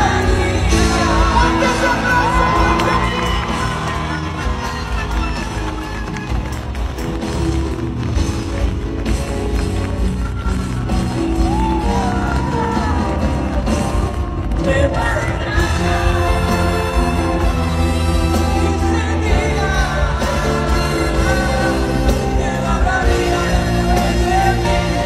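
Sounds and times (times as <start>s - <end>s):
man singing into a microphone: 0.0s - 4.8s, 14.6s - 17.1s, 18.2s - 25.0s
band playing: 0.0s - 25.0s.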